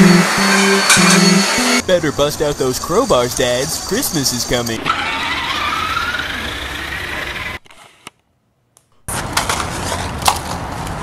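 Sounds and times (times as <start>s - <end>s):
toy truck motor whining: 2.5s - 8.1s.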